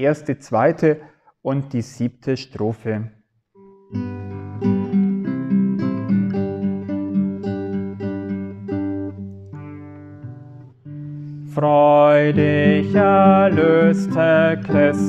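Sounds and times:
acoustic guitar strumming chords: 3.6s - 15.0s.

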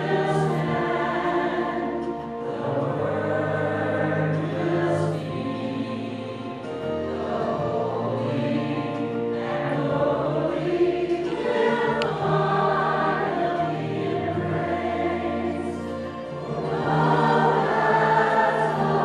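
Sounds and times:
church choir singing in harmony: 0.0s - 19.0s.

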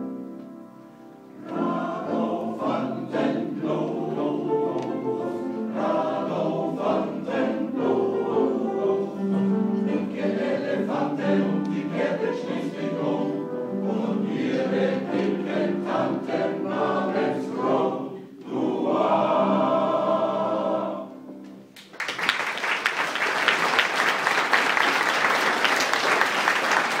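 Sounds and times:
men's choir singing: 1.4s - 21.3s
audience applauding: 21.8s - 27.0s.

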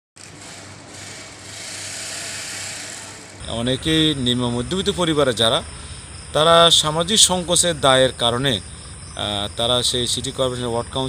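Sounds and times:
steady hiss: 1.0s - 11.0s.

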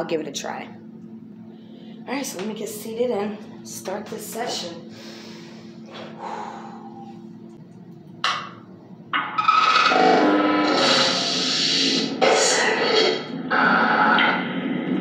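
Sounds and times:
radio sweeping through stations: 9.7s - 15.0s.

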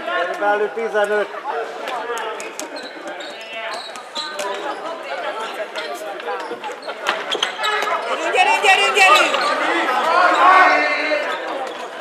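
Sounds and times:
players calling out: 1.7s - 12.0s
shoe squeaks: 2.4s - 5.0s, 5.8s - 12.0s.

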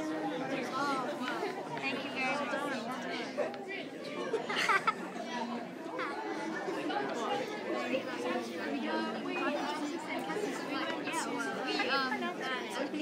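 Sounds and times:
overlapping voices chattering: 0.0s - 13.0s
laughter: 4.2s - 5.4s.

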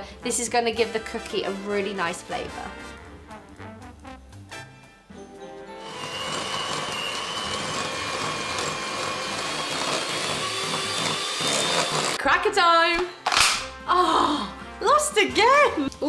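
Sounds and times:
background music: 0.0s - 16.0s
electric hand mixer whining: 5.8s - 12.2s.

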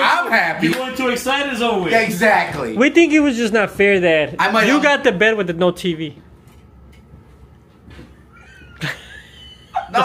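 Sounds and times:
men laughing: 8.0s - 10.0s.

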